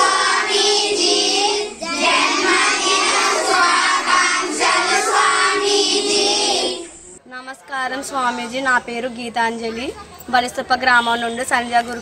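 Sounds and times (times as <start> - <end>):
children chanting in unison: 0.0 - 6.9.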